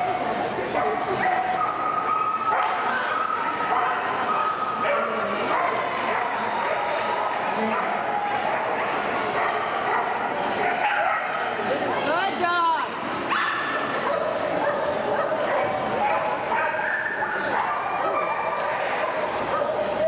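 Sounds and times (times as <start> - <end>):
dogs barking and yipping: 0.7 - 11.4, 13.3 - 20.0.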